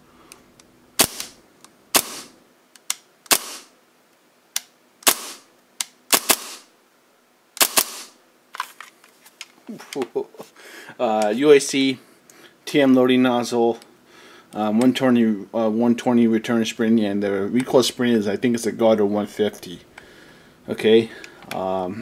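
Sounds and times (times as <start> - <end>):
airsoft pistol shots: 1.0 - 2.4, 3.3 - 3.8, 5.0 - 5.5, 6.1 - 6.7, 7.6 - 8.2.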